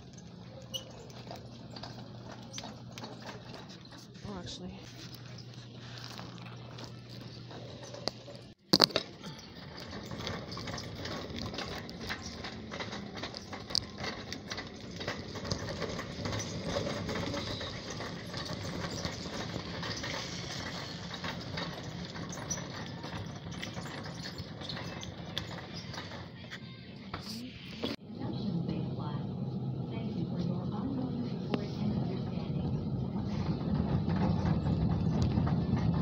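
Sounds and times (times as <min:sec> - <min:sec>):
store background hum: 0:00.0 - 0:36.0.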